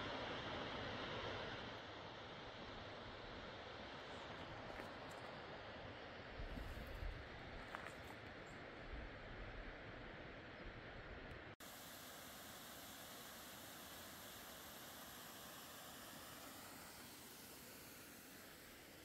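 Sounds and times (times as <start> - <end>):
small waterfall and creek hissing: 0.0 - 19.0
wind rumbling on microphone: 6.3 - 10.0.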